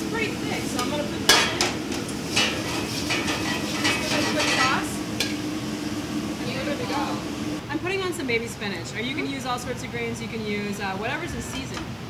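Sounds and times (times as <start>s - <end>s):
sauce sizzling in a pan: 0.0s - 7.6s
utensil scraping a pan: 0.7s - 5.4s.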